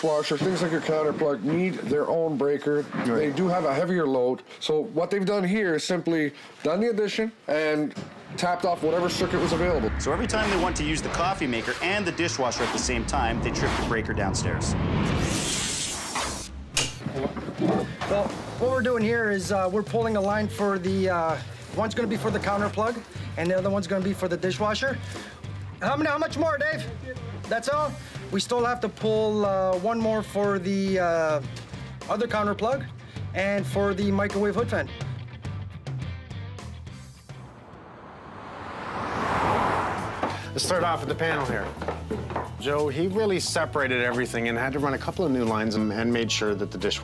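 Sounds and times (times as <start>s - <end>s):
whoosh transition effect: 8.4s - 17.1s, 37.0s - 40.3s.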